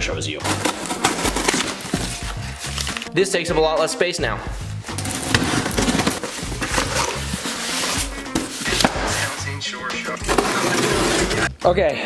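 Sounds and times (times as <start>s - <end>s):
background music with bass beat: 1.3s - 12.0s.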